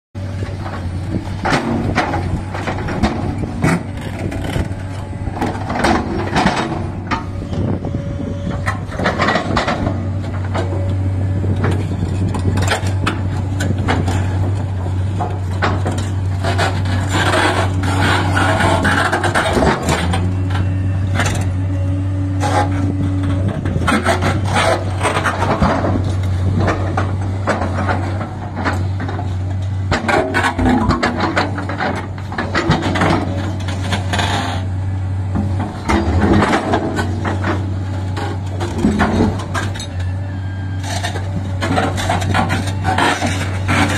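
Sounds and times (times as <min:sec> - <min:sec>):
excavator diesel engine droning: 0:00.2 - 0:43.9.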